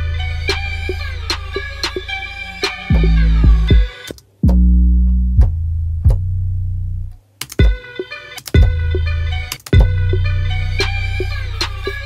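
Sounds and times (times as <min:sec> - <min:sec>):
heavy bass notes: 0:00.0 - 0:07.2, 0:08.6 - 0:12.0
plucked-string melody loop: 0:00.0 - 0:12.0
sharp percussion clicks: 0:07.4 - 0:10.0.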